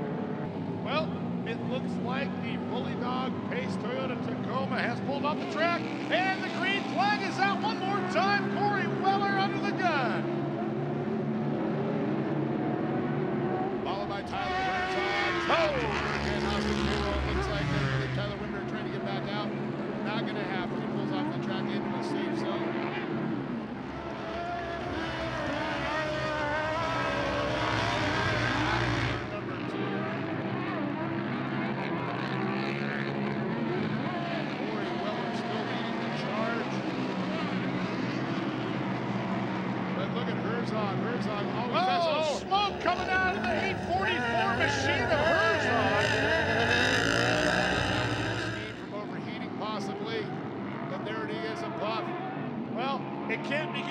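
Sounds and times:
race engines revving: 0:00.0 - 0:53.9.

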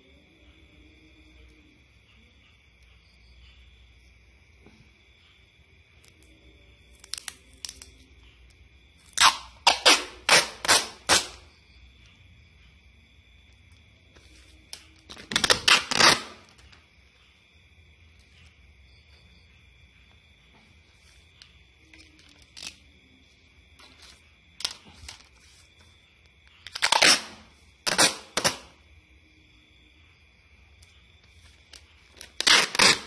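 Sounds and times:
small packaging clicks: 0:06.9 - 0:08.0, 0:21.9 - 0:22.9.

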